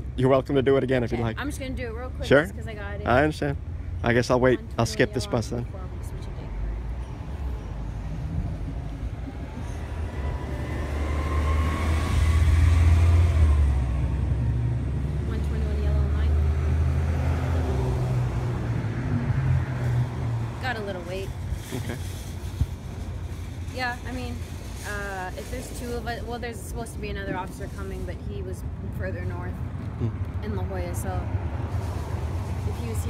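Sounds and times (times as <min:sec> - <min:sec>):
bus engine rumble with whine: 0:00.0 - 0:33.0.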